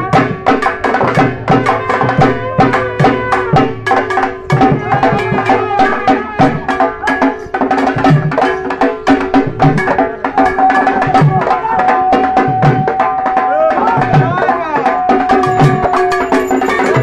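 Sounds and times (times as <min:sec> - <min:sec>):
deep drum beat: 0:00.0 - 0:17.0
fast hand-drum strokes: 0:00.0 - 0:17.0.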